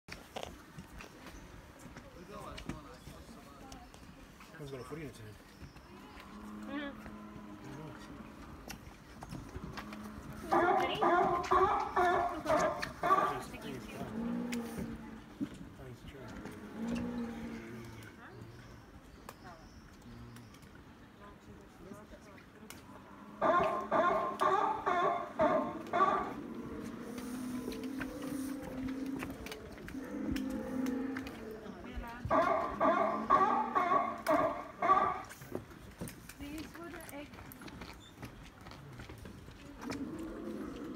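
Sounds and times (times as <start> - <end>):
dinosaur calls from loudspeaker: 23.4 - 26.4, 32.3 - 35.2.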